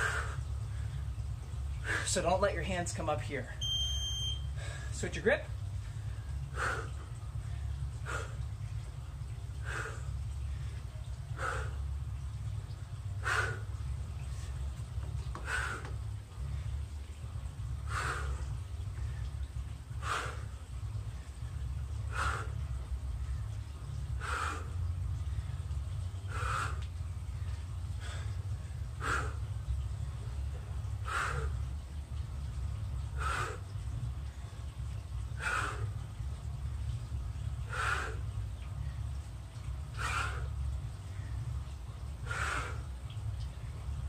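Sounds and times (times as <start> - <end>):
steady low rumble: 0.0 - 44.0.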